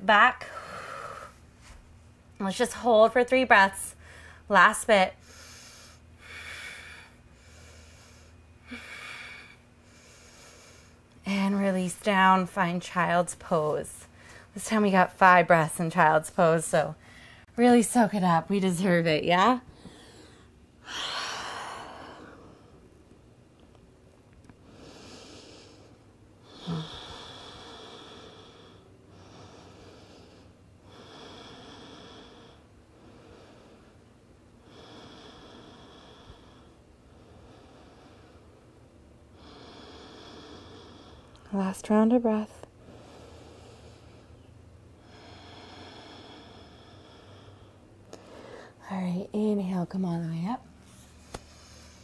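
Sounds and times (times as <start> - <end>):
woman breathing slowly: 0.4 - 1.8, 3.9 - 4.5, 5.2 - 11.2, 14.0 - 14.6, 17.0 - 17.5, 19.6 - 23.1, 24.4 - 41.6, 42.6 - 48.8, 51.0 - 52.0.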